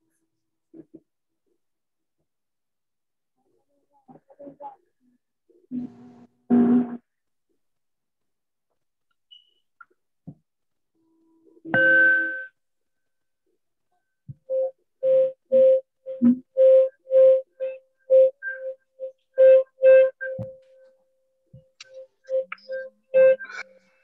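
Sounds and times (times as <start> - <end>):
tone stepping up in pitch: 14.5 - 20.7, 21.8 - 23.8.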